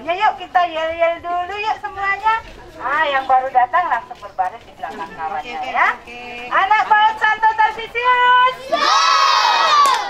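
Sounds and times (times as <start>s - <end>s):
children shouting a chant: 8.6s - 10.0s.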